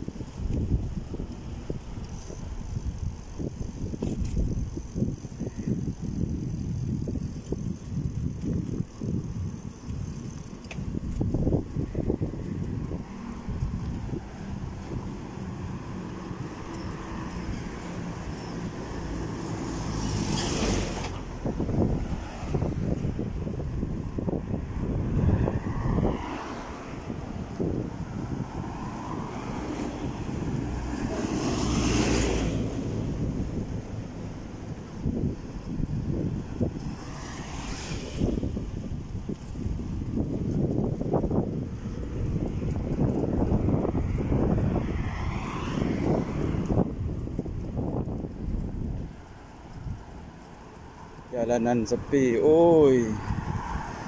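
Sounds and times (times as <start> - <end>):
wind rumbling on microphone: 0.0 - 54.0.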